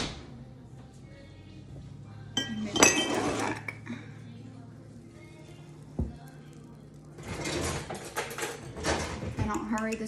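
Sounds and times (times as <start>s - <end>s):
low steady hum: 0.3s - 7.2s
glass dish scraping on counter: 2.4s - 3.8s.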